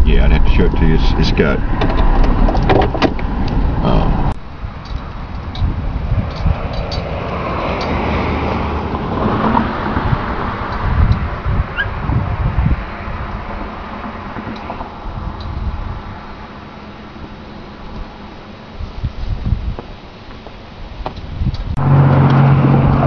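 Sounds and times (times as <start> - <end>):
vehicle driving on rough road: 0.0 - 23.0
wind buffeting microphone: 0.0 - 23.0.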